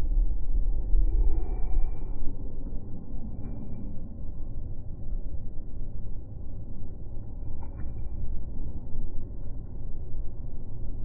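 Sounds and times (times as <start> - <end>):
low uneven rumble: 0.0 - 11.0.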